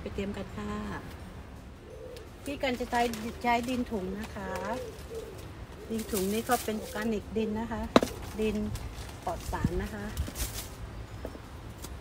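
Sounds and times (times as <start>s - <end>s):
woman speaking: 0.0s - 1.1s, 2.4s - 4.8s, 5.9s - 10.2s
pigeon cooing: 1.8s - 2.4s, 4.2s - 7.1s.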